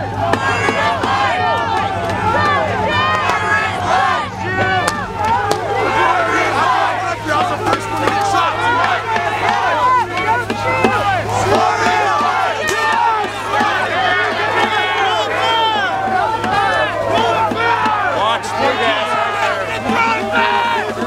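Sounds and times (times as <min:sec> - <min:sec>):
crowd shouting: 0:00.0 - 0:21.0.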